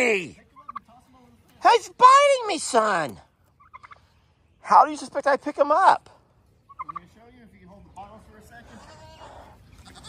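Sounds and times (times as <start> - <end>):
turkey gobbling: 0.2 - 1.0, 3.4 - 6.0, 6.6 - 7.2.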